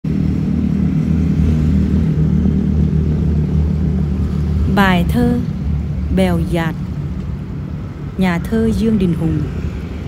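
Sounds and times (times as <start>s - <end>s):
low engine rumble: 0.1s - 10.0s.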